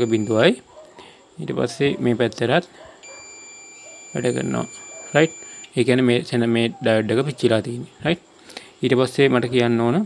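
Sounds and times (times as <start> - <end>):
multimeter high beep: 0.0 - 0.6, 3.0 - 5.9.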